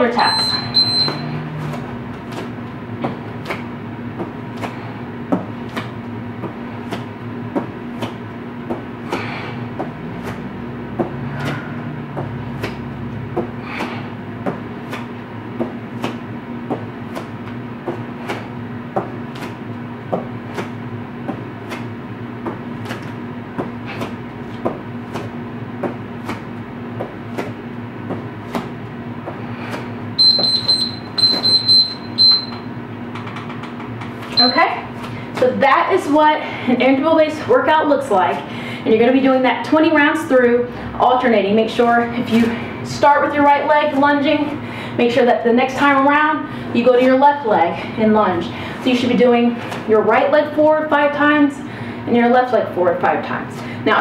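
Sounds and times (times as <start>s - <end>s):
steady low hum: 0.0s - 54.0s
high electronic timer beeps: 0.1s - 1.4s, 30.2s - 32.7s, 34.4s - 34.8s.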